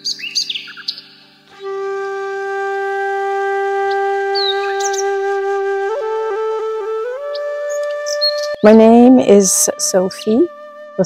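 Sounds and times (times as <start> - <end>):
high bird chirps: 0.0 - 1.3, 7.3 - 8.7
flute holding long note: 1.6 - 11.0.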